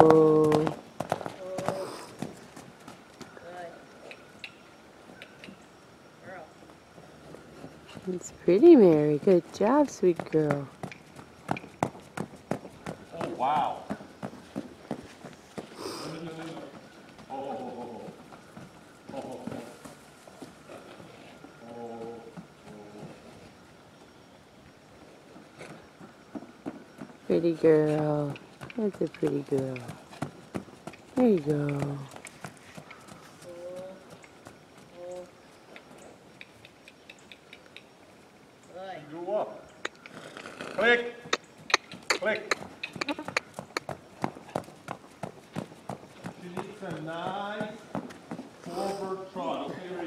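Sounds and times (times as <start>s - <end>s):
hoofbeats trotting on sand: 0.0s - 3.5s, 6.6s - 24.2s, 25.0s - 37.4s, 41.2s - 49.2s.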